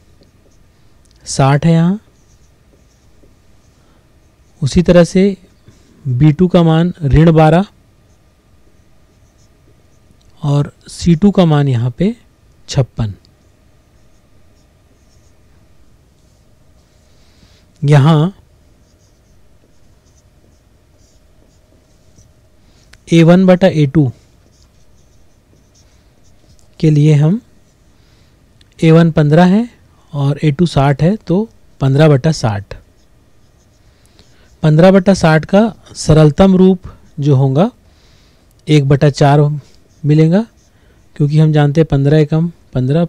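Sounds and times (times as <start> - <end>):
marker squeaking on whiteboard: 0.2 - 0.7, 2.0 - 4.6, 8.0 - 10.1, 13.4 - 16.0, 18.7 - 22.4, 24.4 - 26.8, 32.8 - 34.5.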